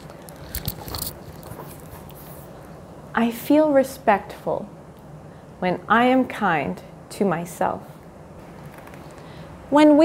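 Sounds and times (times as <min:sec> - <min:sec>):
book pages rustling: 0:00.0 - 0:02.6.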